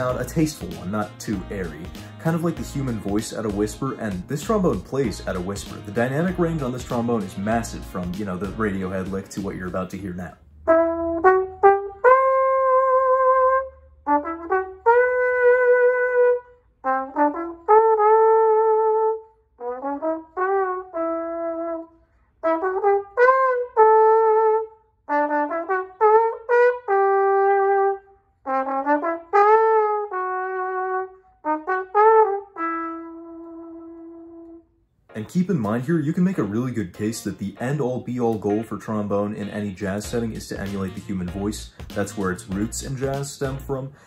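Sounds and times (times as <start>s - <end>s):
soft trombone melody: 0.0s - 44.0s.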